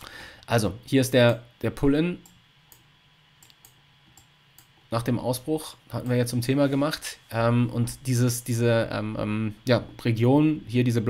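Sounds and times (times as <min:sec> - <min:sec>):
computer mouse clicks: 0:02.2 - 0:04.7.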